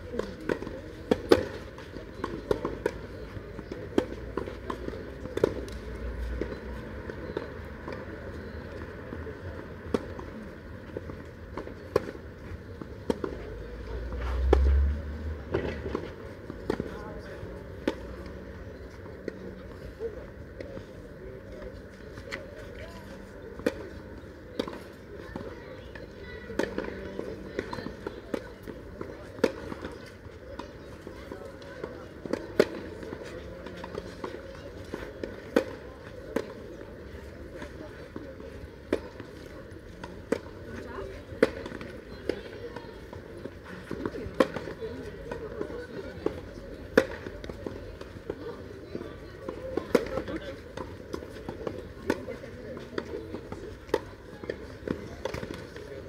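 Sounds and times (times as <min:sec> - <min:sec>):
tennis balls struck by rackets: 0:00.1 - 0:14.7, 0:15.4 - 0:56.0.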